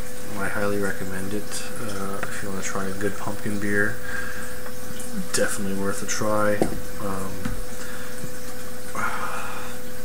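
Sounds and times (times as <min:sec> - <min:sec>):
constant hum: 0:00.0 - 0:10.0.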